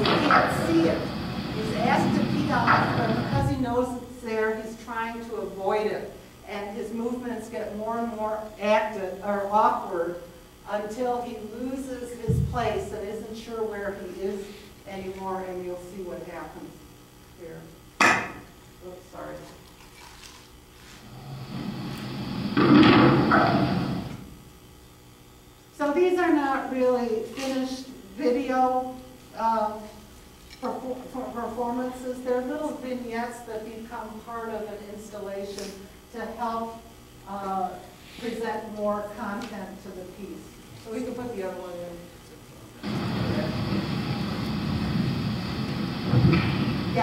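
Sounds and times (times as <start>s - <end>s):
rumbling noise over loudspeakers: 0.0s - 6.0s, 10.7s - 14.4s, 21.1s - 24.2s, 42.8s - 47.0s
steady rumbling noise: 0.0s - 19.3s, 21.0s - 24.5s, 30.7s - 47.0s
loud thud: 46.1s - 47.0s.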